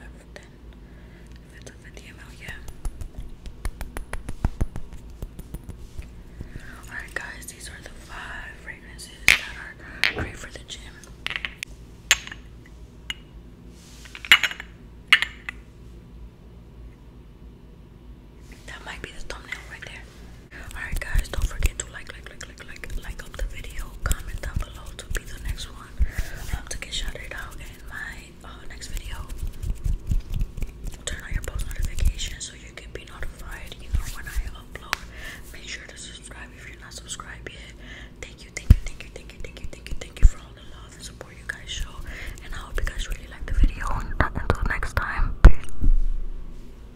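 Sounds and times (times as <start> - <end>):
person whispering: 1.5 - 2.8, 6.6 - 11.0, 18.6 - 29.3, 31.0 - 45.4.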